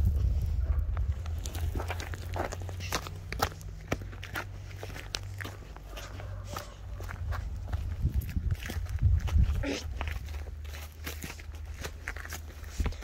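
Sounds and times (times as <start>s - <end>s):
footsteps on loose gravel: 0.0s - 13.0s.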